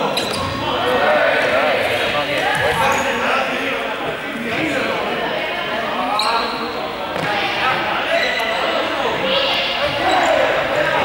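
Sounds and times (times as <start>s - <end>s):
players calling out: 0.0s - 11.0s.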